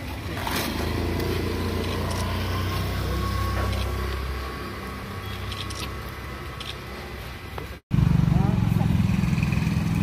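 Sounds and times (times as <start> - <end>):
vehicle engine running: 0.7 - 6.9.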